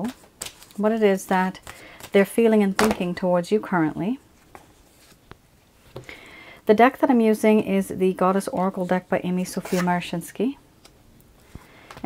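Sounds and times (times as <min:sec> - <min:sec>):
woman speaking: 0:00.8 - 0:04.2, 0:06.6 - 0:10.6.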